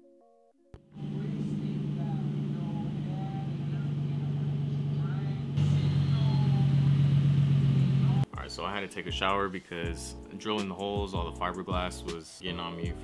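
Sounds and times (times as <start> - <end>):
car engine idling: 0.8 - 8.3.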